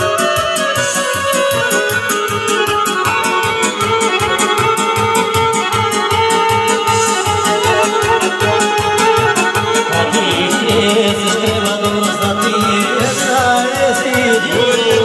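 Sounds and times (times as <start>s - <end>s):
band playing folk dance music: 0.0s - 15.0s.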